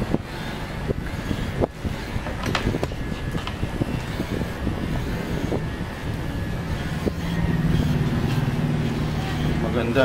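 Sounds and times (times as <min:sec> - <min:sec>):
electric pet clipper humming: 0:00.0 - 0:10.0.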